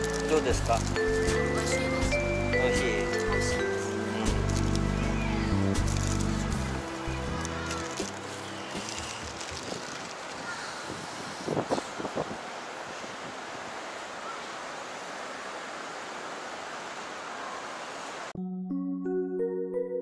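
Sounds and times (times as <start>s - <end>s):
background music sustained notes: 0.0s - 9.8s, 18.4s - 20.0s
wind noise on microphone: 8.7s - 13.5s.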